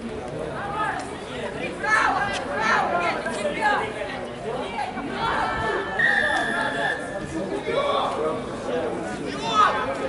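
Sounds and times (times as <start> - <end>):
spectators chattering: 0.0 - 10.0
referee's whistle blown: 6.0 - 7.2.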